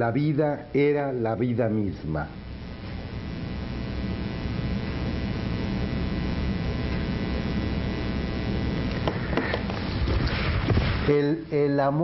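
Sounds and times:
electrical mains hum: 0.0 - 12.0
faint steady tones: 0.0 - 12.0
recording hiss: 0.0 - 12.0.

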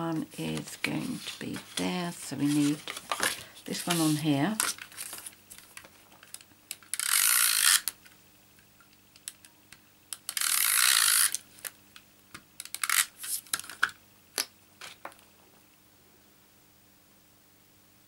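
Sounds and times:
tape runner rasping on paper: 7.0 - 7.9, 10.3 - 11.4.

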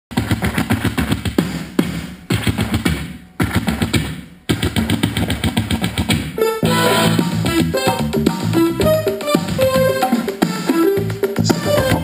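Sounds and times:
music with fast percussive beat: 0.1 - 12.0.

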